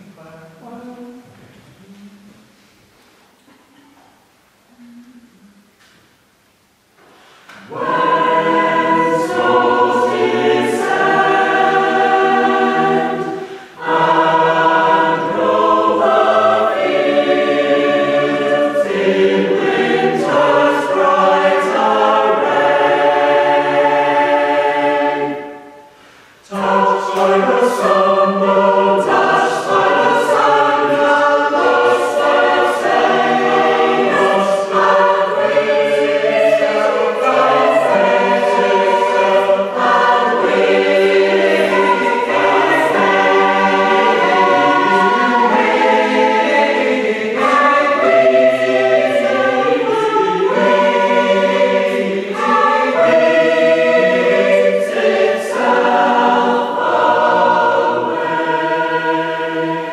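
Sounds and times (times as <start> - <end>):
mixed choir singing a hymn: 7.3 - 59.9.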